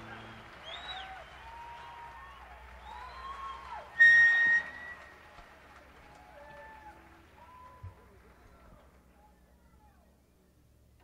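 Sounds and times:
faint audience chatter: 0:00.0 - 0:11.0.

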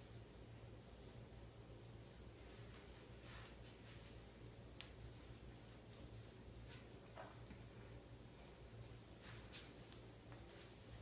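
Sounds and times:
hair rustling in hands: 0:00.0 - 0:11.0
low steady room hum: 0:00.0 - 0:11.0.

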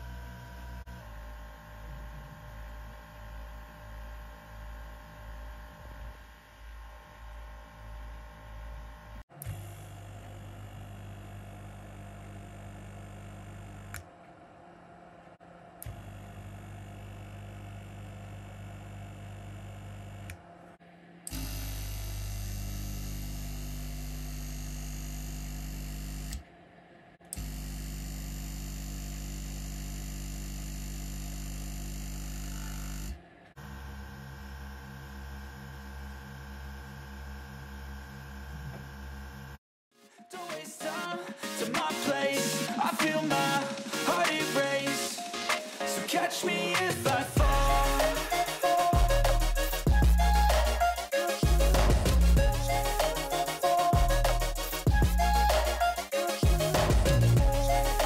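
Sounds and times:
compressor pulsing hum: 0:00.0 - 0:39.6, 0:47.3 - 0:58.0
compressor steady hum: 0:46.9 - 0:58.0.

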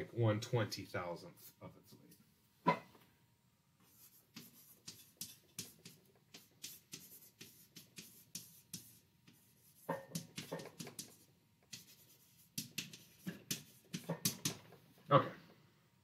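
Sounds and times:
marker squeaking on glass: 0:04.0 - 0:09.0, 0:09.6 - 0:14.6.

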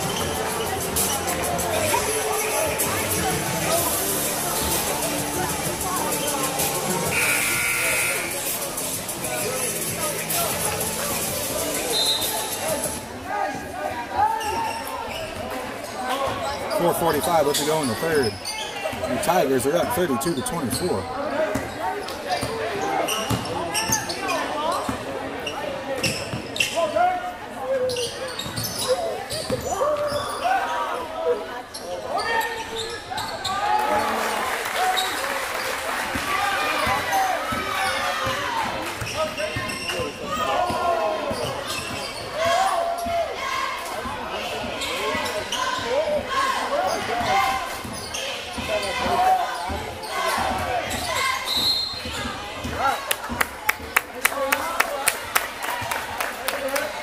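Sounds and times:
voices echoing in gym: 0:00.0 - 0:57.0
referee's whistle: 0:11.9 - 0:12.5, 0:51.4 - 0:52.2.

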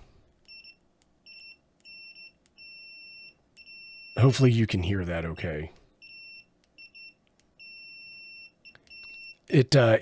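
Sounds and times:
multimeter high-pitched beeps: 0:00.5 - 0:04.3, 0:06.0 - 0:09.5.

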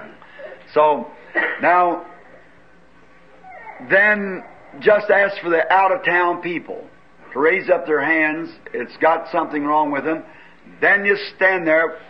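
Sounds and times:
man speaking: 0:00.0 - 0:02.2, 0:03.8 - 0:12.0.

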